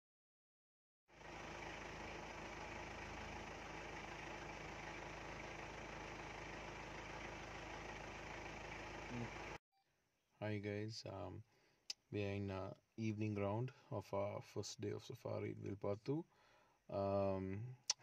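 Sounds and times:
engine idling: 1.1 - 9.6.

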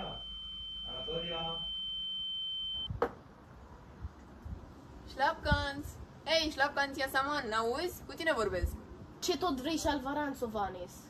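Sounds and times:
high-pitched electronic tone: 0.0 - 2.9.

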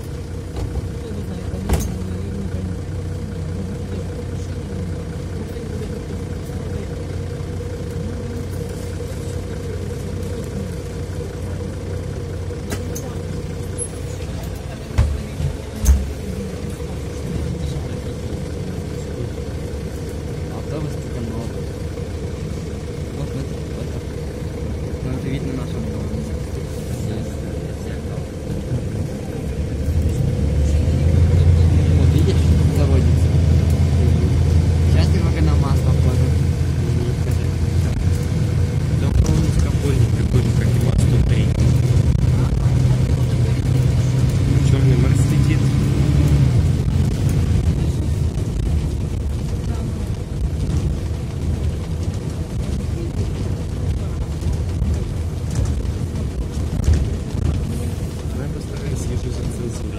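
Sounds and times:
bus engine accelerating: 0.0 - 59.9
bus engine idling: 0.0 - 59.9.

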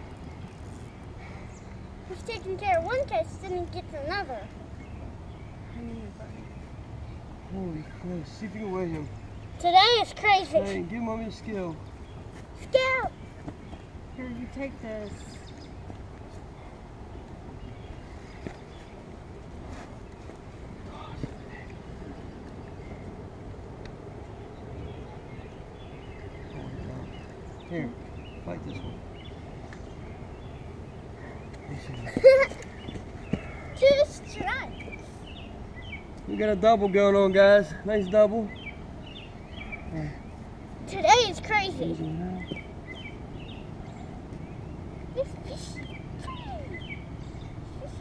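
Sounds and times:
low rumbling background noise: 0.0 - 48.0.

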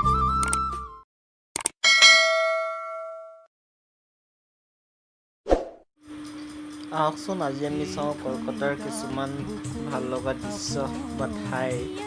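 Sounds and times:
person singing: 7.7 - 12.0.

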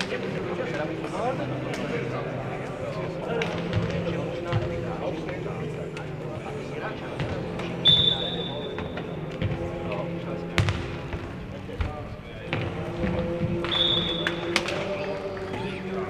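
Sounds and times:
referee's whistle: 7.8 - 8.8, 13.7 - 14.5
ball kicked and bouncing: 10.6 - 10.9.

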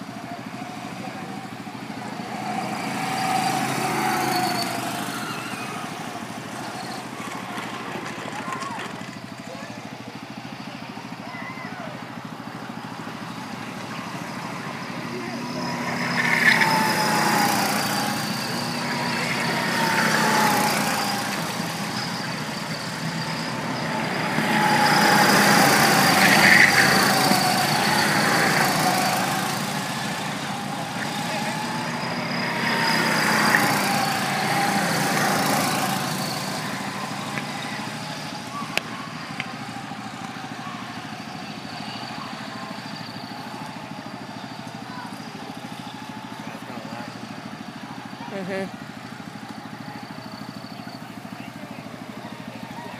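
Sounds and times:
go-kart engines buzzing: 0.0 - 52.9.

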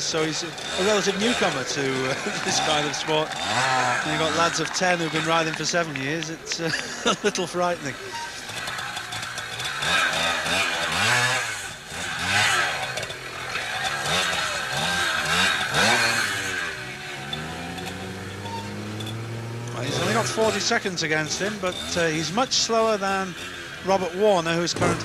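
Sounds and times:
motorcycle engine revving: 0.0 - 25.0.

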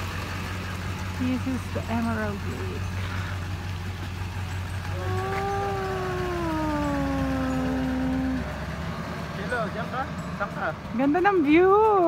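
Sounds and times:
woman singing long note: 4.9 - 8.5.

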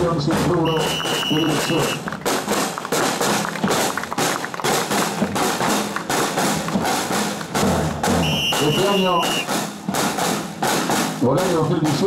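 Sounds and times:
snare drum line: 0.0 - 12.0.

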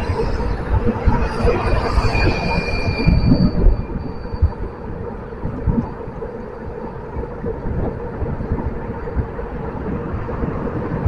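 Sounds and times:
thin high whine: 0.0 - 7.2
wind buffeting microphone: 0.0 - 11.0.

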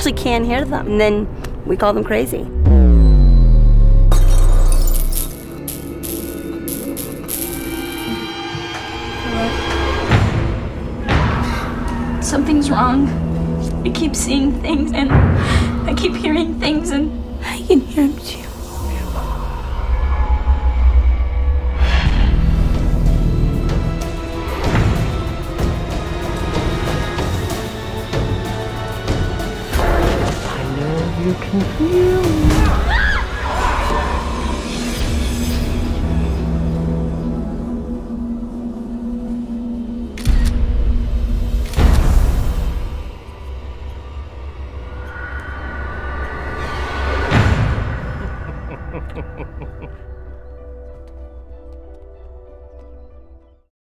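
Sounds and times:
low rumbling drone: 2.4 - 32.6, 33.5 - 50.7
tone sliding down in pitch: 2.6 - 4.1.

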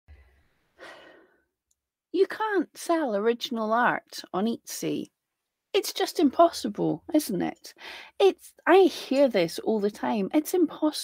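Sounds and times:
woman breathing in: 0.1 - 1.5, 7.8 - 8.2.

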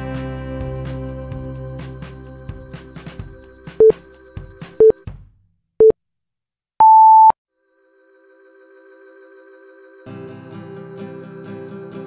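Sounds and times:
background music: 0.0 - 5.2.

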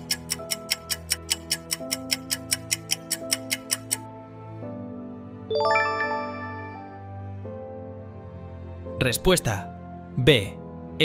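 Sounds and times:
soft background music: 0.0 - 11.0
bright bell-like chime: 5.5 - 7.1.

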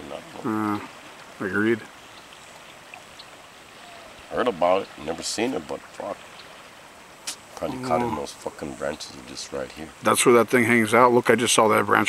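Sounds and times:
river current rushing: 0.0 - 11.2.

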